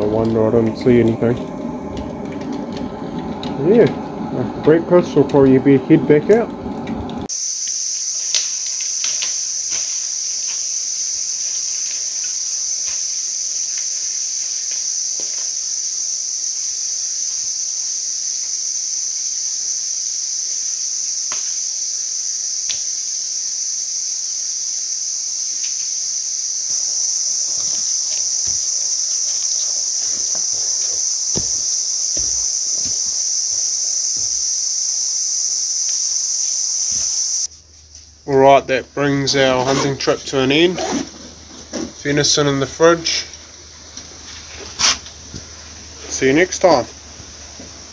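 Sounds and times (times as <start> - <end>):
cicadas chorus: 0.0 - 47.9.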